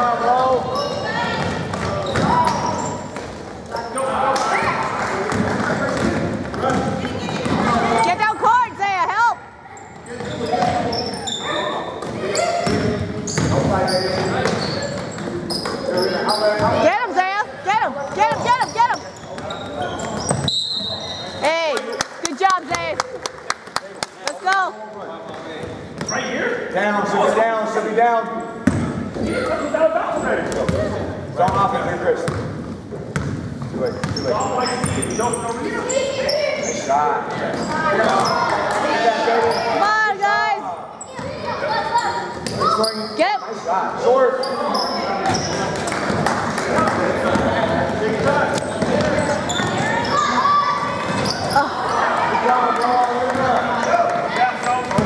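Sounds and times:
basketball bouncing on wooden floor: 33.1s - 33.4s.

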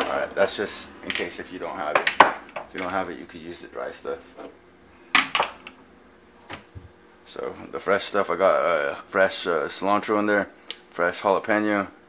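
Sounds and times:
kitchen containers clinking: 0.0s - 0.4s.

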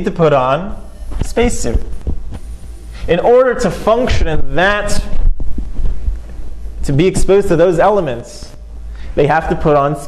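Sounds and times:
man talking: 0.0s - 2.0s, 3.0s - 5.2s, 6.8s - 8.6s, 9.2s - 10.0s
loud low throbbing rumble: 1.8s - 7.4s.

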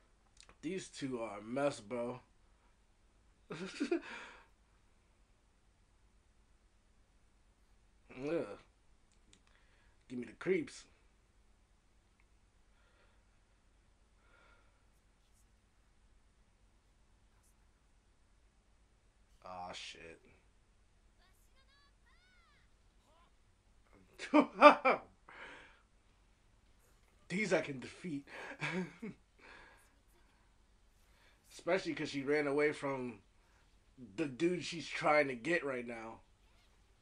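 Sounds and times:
person laughing with breathy exhale: 28.3s - 29.6s.

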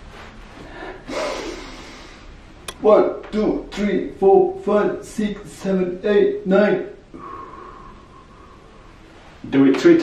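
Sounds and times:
man's sharp deep inhale: 7.1s - 8.9s.

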